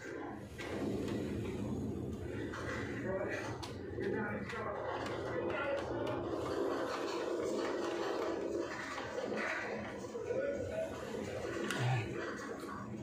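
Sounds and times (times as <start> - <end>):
background voices murmuring: 0.0 - 13.0.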